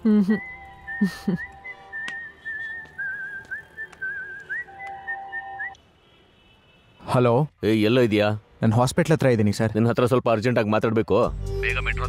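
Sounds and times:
person whistling a tune: 0.1 - 5.8.

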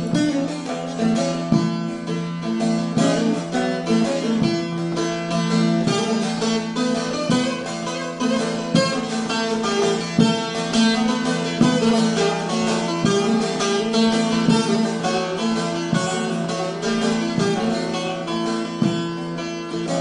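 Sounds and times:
plucked long-necked lute: 0.0 - 20.0.

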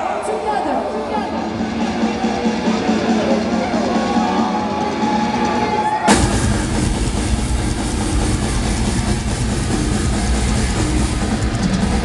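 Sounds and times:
live metal band playing: 0.8 - 12.0.

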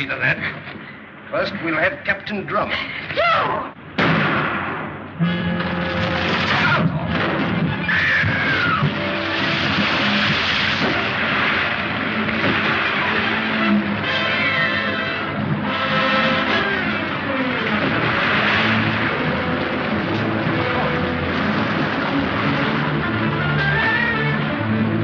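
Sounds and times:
orchestral film score: 0.0 - 25.0.

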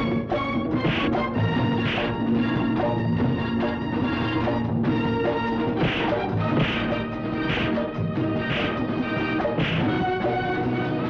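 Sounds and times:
film soundtrack music: 0.0 - 11.0
sharp crash-like hits: 5.8 - 8.8, 9.6 - 9.9.

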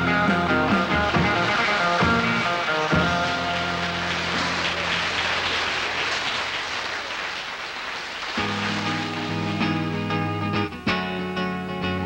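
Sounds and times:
electric guitar strumming chords: 0.0 - 5.0, 8.4 - 12.0.

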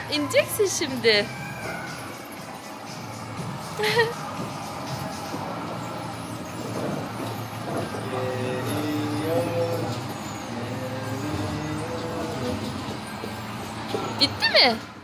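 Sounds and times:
low motor hum: 0.0 - 15.0.

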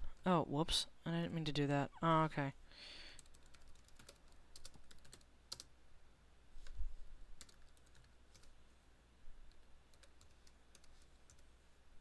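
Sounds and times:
typing on a computer keyboard: 3.2 - 5.7, 7.4 - 8.5, 9.5 - 11.5.

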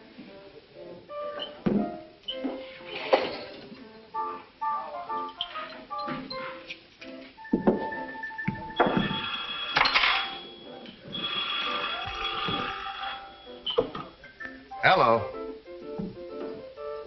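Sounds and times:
background music: 0.0 - 17.0
old telephone bell ringing: 8.8 - 13.7.

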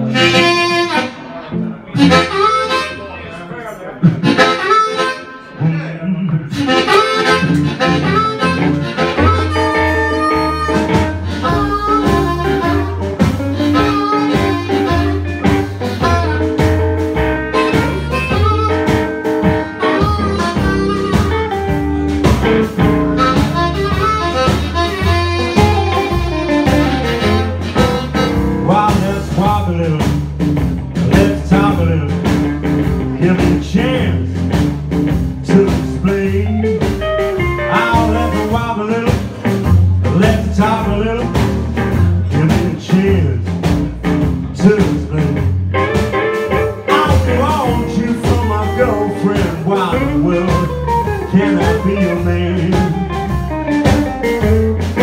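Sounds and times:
amplified harmonica: 0.0 - 29.8, 35.2 - 40.9
blues band playing: 0.0 - 55.0.

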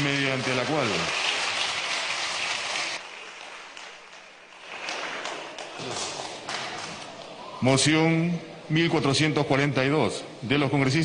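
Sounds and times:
group applauding: 0.0 - 7.4.

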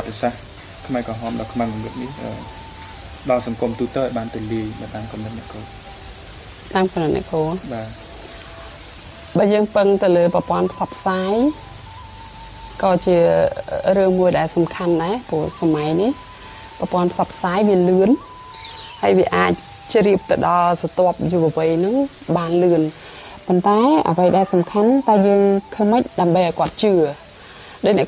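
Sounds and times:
steady high-pitched hiss: 0.0 - 28.0
person talking: 6.8 - 7.9, 12.8 - 16.2, 19.0 - 27.2, 27.8 - 28.0.

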